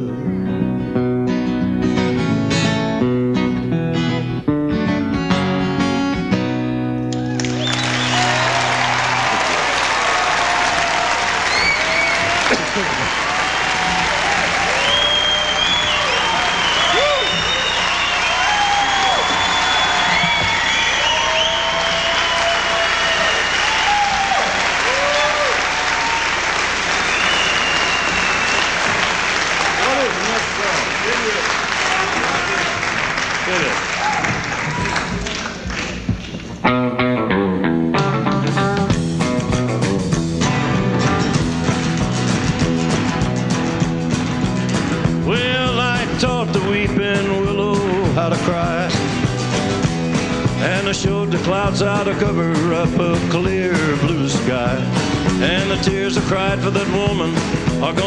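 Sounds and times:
acoustic guitar strumming chords: 0:00.0 - 0:07.3, 0:36.7 - 0:58.0
audience applause and cheering: 0:07.1 - 0:36.6, 0:39.3 - 0:47.4.

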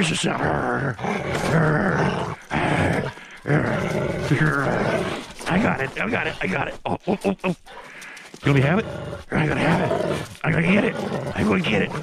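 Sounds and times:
dog growling: 0:00.0 - 0:12.0.

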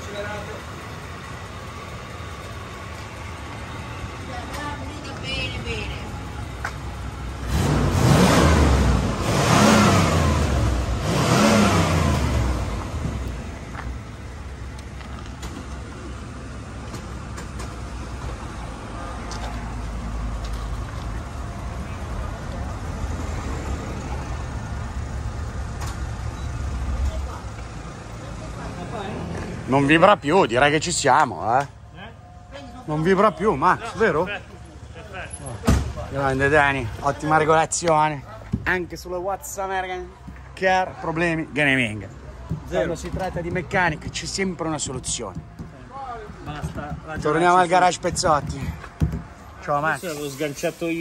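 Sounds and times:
car engine idling and revving: 0:00.0 - 0:51.0.

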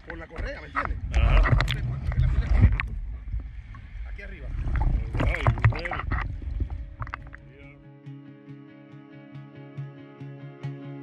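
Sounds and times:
wind on camera: 0:00.0 - 0:07.7
water sloshing: 0:00.0 - 0:07.8.

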